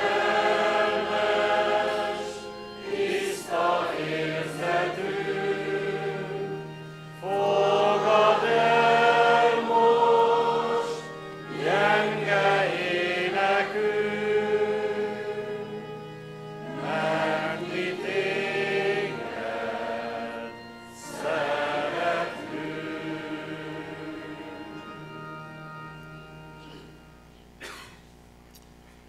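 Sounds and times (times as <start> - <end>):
congregation singing a hymn: 0.0 - 27.0.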